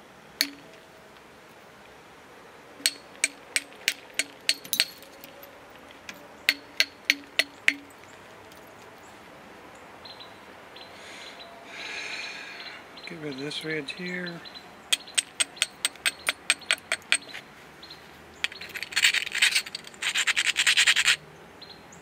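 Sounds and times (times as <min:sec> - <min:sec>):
metal tool clinking on stone: 0:00.4 - 0:00.7, 0:02.8 - 0:05.5, 0:18.4 - 0:20.1.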